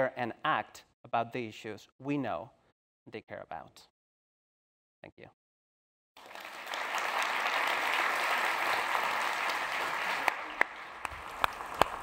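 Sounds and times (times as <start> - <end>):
audience applause: 6.2 - 12.0.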